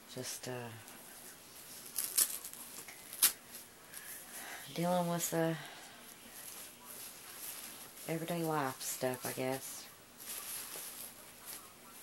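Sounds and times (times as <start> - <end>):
baby clothing rustling: 0.9 - 12.0.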